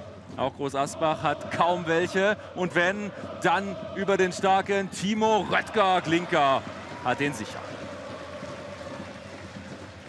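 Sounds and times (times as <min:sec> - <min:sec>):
stadium crowd hum: 0:00.0 - 0:10.0.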